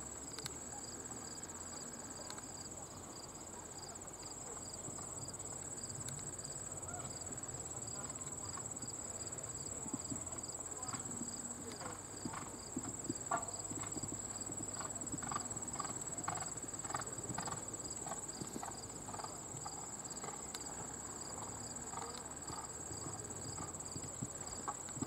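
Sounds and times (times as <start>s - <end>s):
horse hoofbeats on sand: 9.6s - 25.0s.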